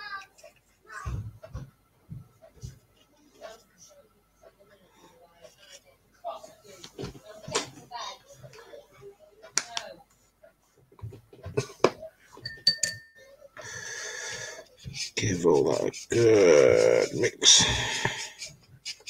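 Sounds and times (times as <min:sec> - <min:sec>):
steady noise: 0:15.0 - 0:18.7.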